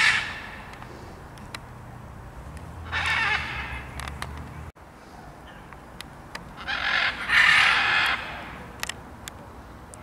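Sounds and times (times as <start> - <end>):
macaw squawk: 0.0 - 0.7, 2.8 - 4.0, 6.6 - 8.6.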